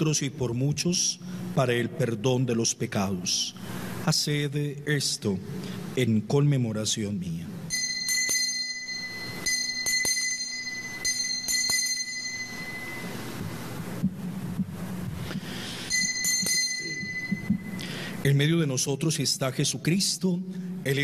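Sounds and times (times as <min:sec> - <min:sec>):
altar bell ringing: 0:07.7 - 0:13.9, 0:15.5 - 0:18.4.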